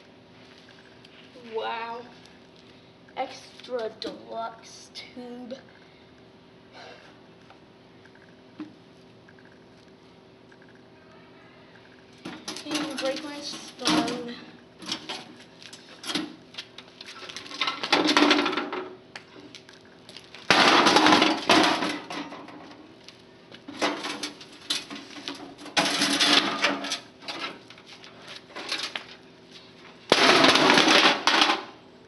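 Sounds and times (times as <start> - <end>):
monitor case clattering on concrete: 23.7 - 27.6.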